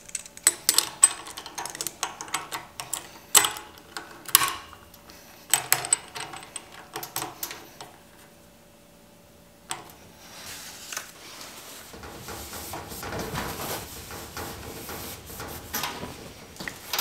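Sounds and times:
metal clamp clicking and clinking: 0:00.0 - 0:07.9.

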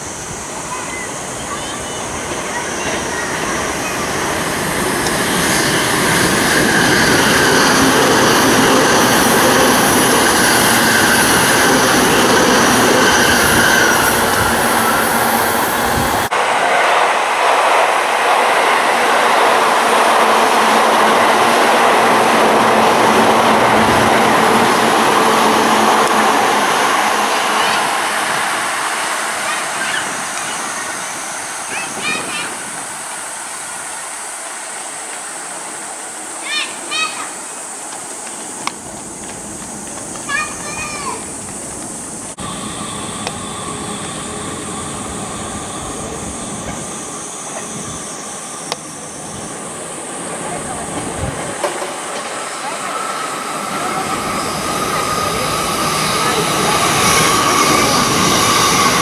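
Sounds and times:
commuter train rumble and hiss: 0:00.0 - 0:59.0
train whining and rolling past: 0:00.0 - 0:59.0.

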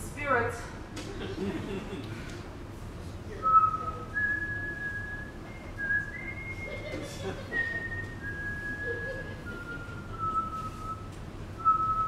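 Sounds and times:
person whistling a slow tune: 0:03.4 - 0:12.0.

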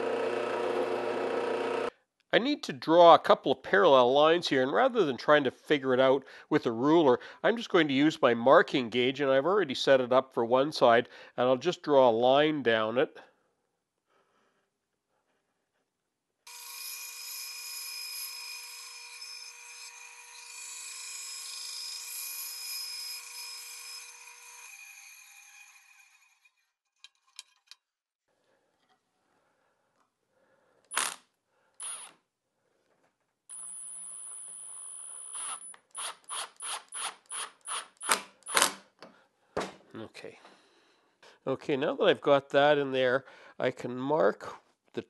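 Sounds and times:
bandsaw cutting wood: 0:00.0 - 0:01.9, 0:16.5 - 0:26.5
impact driver bursts: 0:35.3 - 0:38.8.

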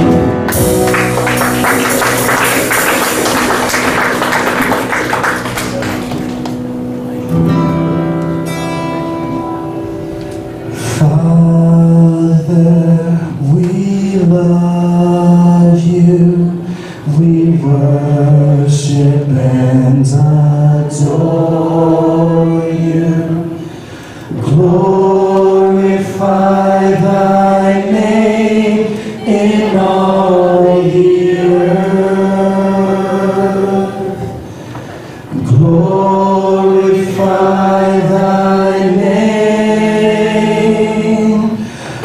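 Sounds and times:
worship band playing: 0:00.0 - 0:42.0
man singing low notes: 0:10.8 - 0:34.5, 0:35.3 - 0:41.7.

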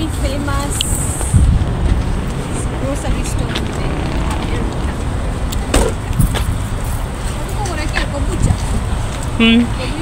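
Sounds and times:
faint voices: 0:00.0 - 0:06.3
car rumbling on road: 0:00.0 - 0:08.2.

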